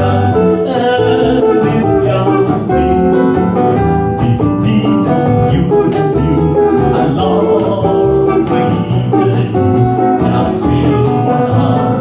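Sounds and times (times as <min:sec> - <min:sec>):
small band playing a slow ballad: 0:00.0 - 0:12.0.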